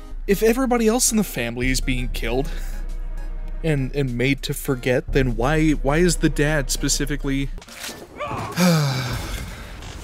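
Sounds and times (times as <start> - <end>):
man sighing: 8.5 - 9.8.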